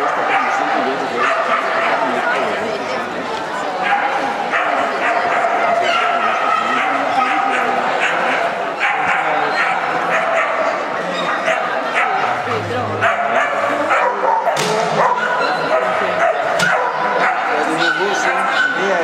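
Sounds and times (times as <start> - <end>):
dogs barking and yipping: 0.0 - 2.2, 3.8 - 19.0.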